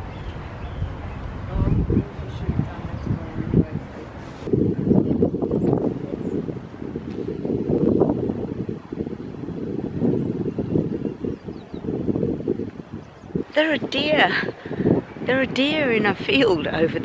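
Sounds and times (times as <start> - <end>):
wind buffeting microphone: 0.0 - 17.0.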